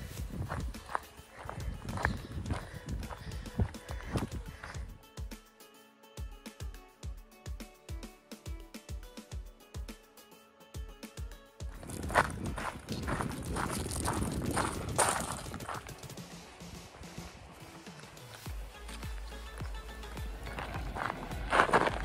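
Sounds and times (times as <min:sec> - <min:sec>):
wind rumble on microphone: 0:00.0 - 0:00.8, 0:01.4 - 0:04.9, 0:11.8 - 0:15.7
footsteps on gravel: 0:00.0 - 0:04.9, 0:11.7 - 0:22.0
background music with beat: 0:00.0 - 0:22.0.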